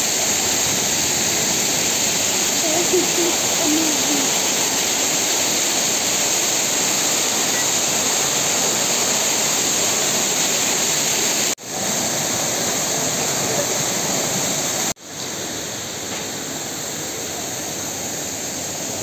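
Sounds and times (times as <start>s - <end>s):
fountain water splashing: 0.0s - 19.0s
water jets falling into basin: 0.0s - 19.0s.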